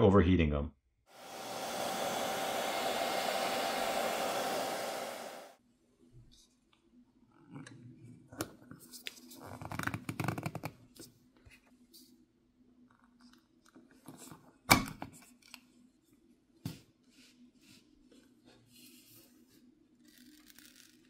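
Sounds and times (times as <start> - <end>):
hair dryer blowing: 1.1 - 5.6.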